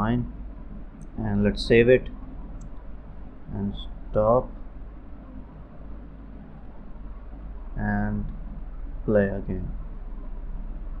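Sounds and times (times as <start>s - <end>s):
recording hum and hiss: 0.0s - 11.0s.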